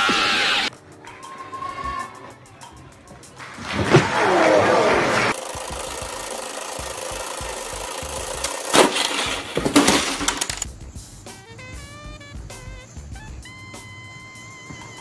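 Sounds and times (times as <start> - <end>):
loud falling cry: 0.0 - 2.8, 3.6 - 5.4
music: 0.0 - 15.0
game timer ticking: 5.3 - 8.8
board popping up: 8.7 - 10.7.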